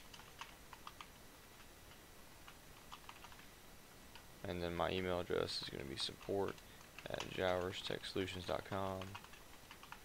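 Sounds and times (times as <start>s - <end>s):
faint keyboard typing: 0.0s - 3.5s, 5.3s - 10.0s.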